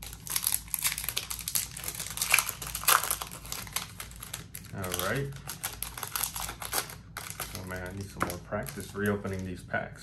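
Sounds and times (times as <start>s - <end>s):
foil wrapper crinkling: 0.0s - 9.6s.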